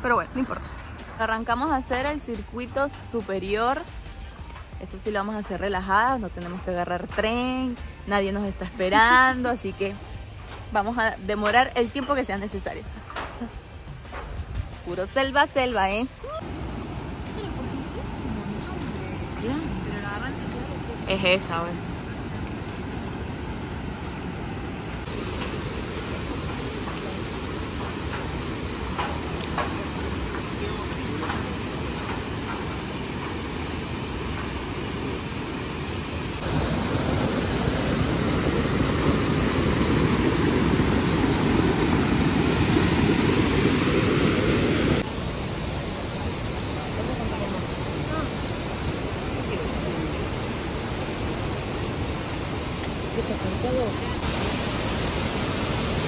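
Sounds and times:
river and waterfall roaring: 0:13.4 - 0:56.0.

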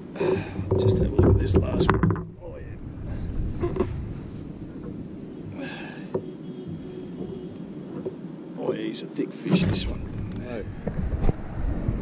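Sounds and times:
wind buffeting microphone: 0:00.4 - 0:08.6, 0:09.6 - 0:12.0
light knocks: 0:04.7 - 0:08.2.

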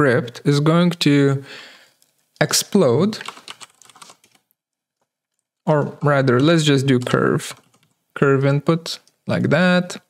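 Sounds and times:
computer keyboard typing: 0:03.2 - 0:04.4, 0:06.9 - 0:08.0.

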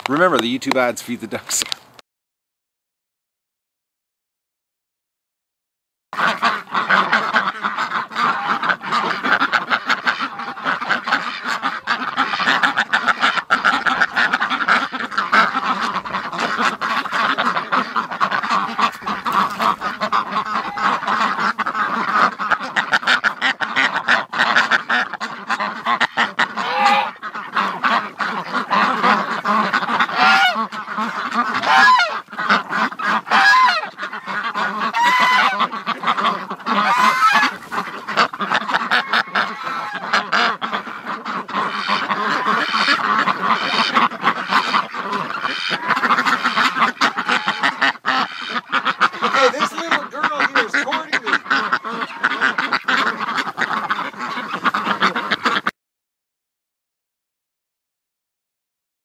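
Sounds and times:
ducks quacking: 0:00.0 - 0:01.8, 0:06.2 - 0:55.8.

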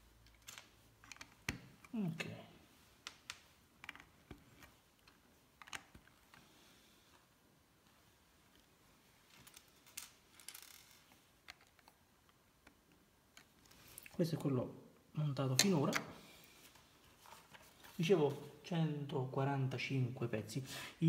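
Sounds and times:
light rattling of plastic pieces: 0:08.5 - 0:14.1.

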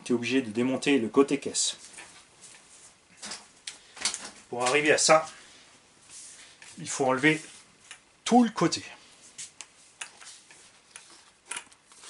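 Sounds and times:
plastic parts clicking and knocking: 0:11.0 - 0:11.9.

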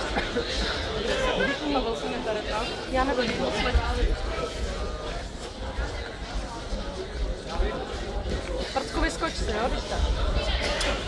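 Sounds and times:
indistinct voices and chatter: 0:00.0 - 0:11.0.

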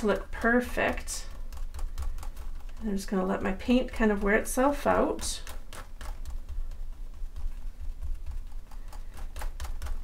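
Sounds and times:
sponge dabbing paint taps: 0:00.0 - 0:10.0.

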